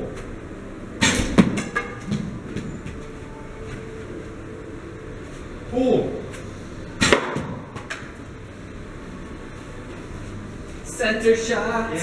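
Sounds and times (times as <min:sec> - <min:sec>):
arrow striking target: 0:01.0 - 0:02.2, 0:07.0 - 0:07.8.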